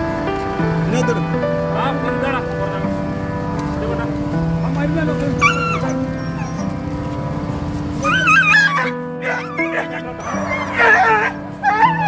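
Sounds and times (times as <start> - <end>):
background music: 0.0 - 12.0
dog yelping and whining: 5.4 - 6.9, 8.0 - 12.0.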